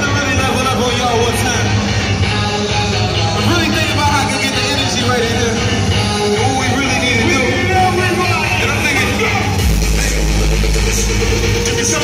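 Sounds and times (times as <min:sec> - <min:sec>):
crowd din: 0:00.0 - 0:12.0.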